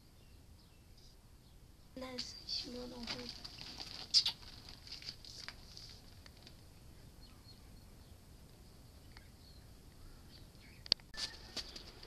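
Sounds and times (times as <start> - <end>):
hands rustling paper poster: 2.2 - 6.6.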